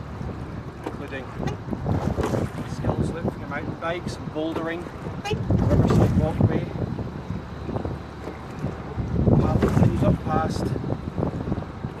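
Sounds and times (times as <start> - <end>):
water splashing around rowing boat: 0.0 - 12.0
wind buffeting microphone: 0.0 - 12.0.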